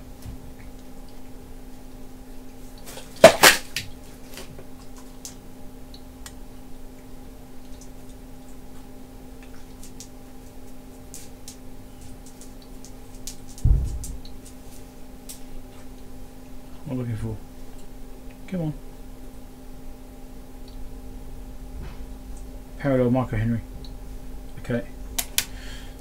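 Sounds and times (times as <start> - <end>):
electrical hum: 0.0 - 26.0
dull thump: 13.6 - 14.3.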